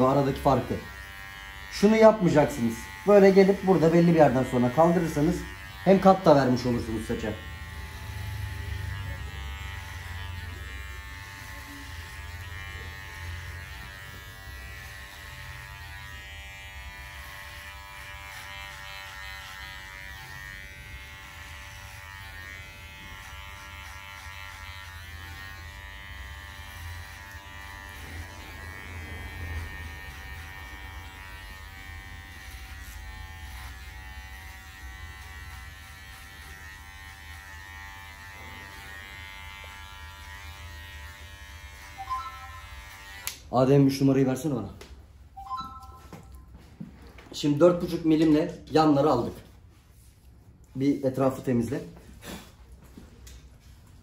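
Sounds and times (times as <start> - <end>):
electric hair clippers buzzing: 0.0 - 43.6.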